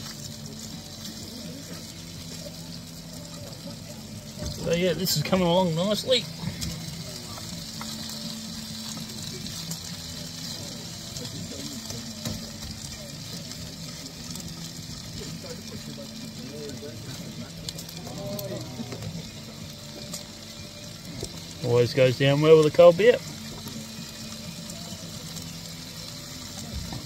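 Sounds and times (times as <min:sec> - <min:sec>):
meat sizzling in a pan: 0:00.0 - 0:27.0.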